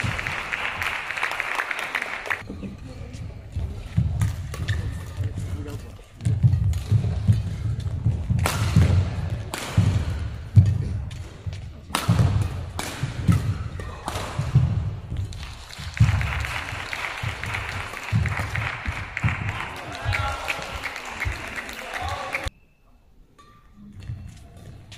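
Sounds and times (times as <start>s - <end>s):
rackets striking shuttlecock: 4.0s - 19.8s.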